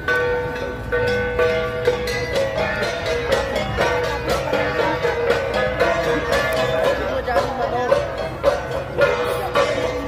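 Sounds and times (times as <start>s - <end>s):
bronze gongs ringing: 0.0s - 10.0s.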